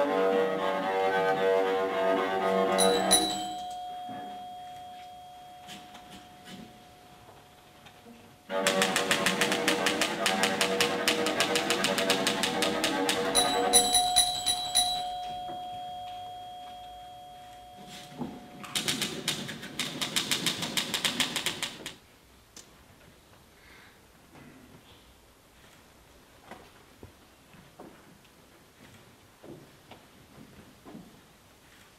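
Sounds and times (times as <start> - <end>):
cello long note: 0.0 - 2.8
typewriter carriage bell: 2.8 - 21.8
typewriter keystrokes: 8.5 - 15.0, 18.6 - 22.0.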